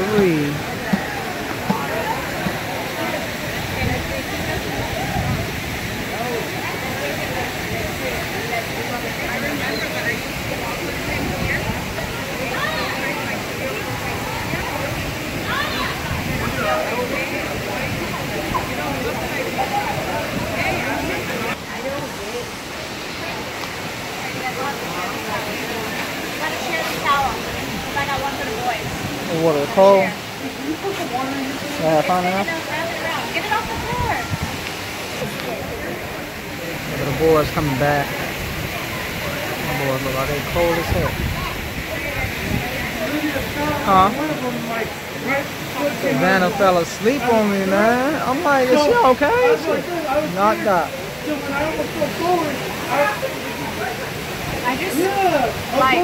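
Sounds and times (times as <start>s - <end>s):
waterfall and river rushing: 0.0s - 56.0s.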